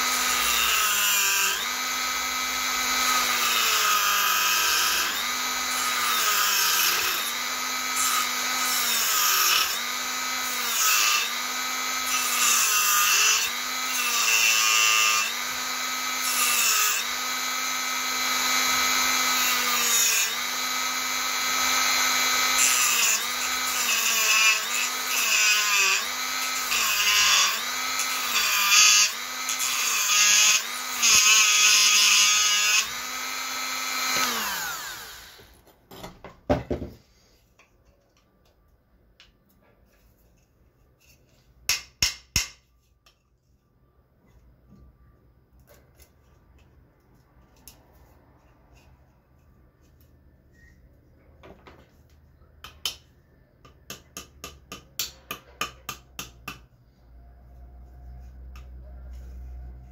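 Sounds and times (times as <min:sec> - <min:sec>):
rotary tool grinding shell: 0:00.0 - 0:35.6.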